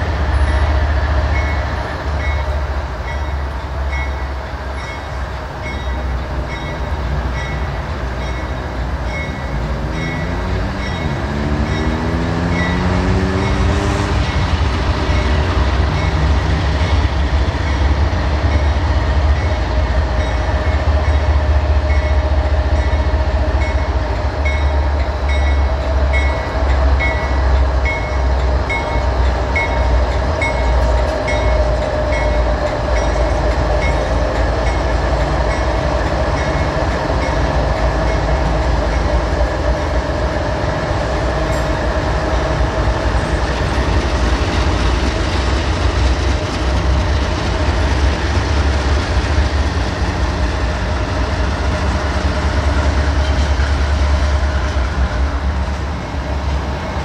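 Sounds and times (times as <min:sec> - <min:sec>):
diesel locomotive engines rumbling: 0:00.0 - 0:57.0.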